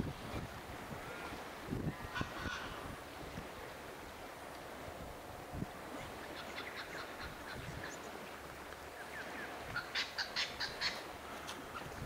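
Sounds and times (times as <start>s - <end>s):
birds chirping: 6.1s - 12.0s.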